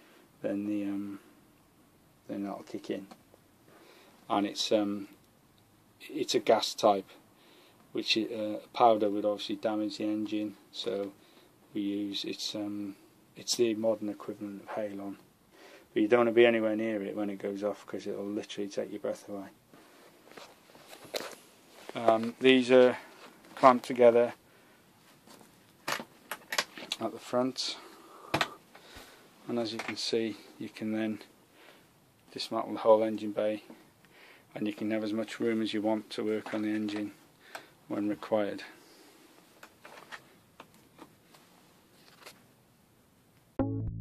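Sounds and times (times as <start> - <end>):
loud music: 43.6 - 44.0.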